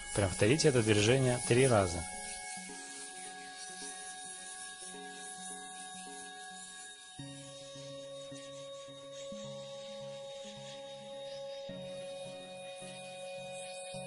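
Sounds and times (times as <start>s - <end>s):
soft instrumental background music: 0.0s - 14.0s.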